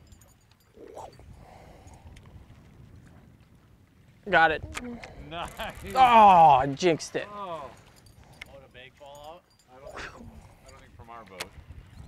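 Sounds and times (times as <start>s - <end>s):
water on boat: 0.0s - 12.0s
wind: 0.0s - 12.0s.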